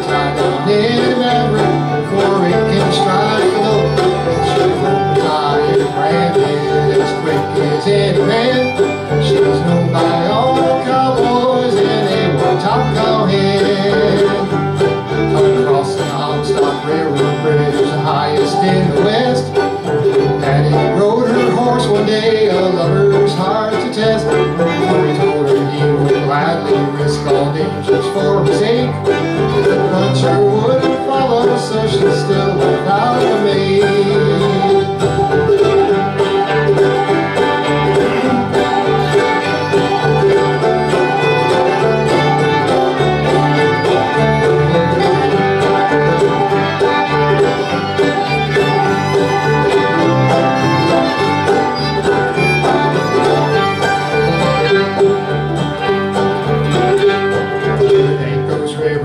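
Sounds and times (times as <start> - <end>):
banjo: 0.0 - 59.0
bowed fiddle: 0.0 - 59.0.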